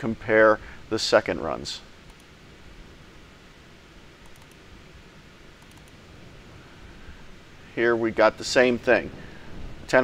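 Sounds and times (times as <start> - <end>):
room hiss: 0.0 - 10.0
computer mouse clicks: 2.1 - 2.3, 4.2 - 4.6, 5.6 - 6.0.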